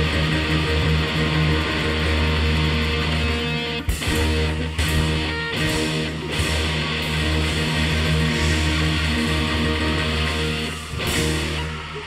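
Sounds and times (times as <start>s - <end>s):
rock band with electric guitars: 0.0s - 12.0s.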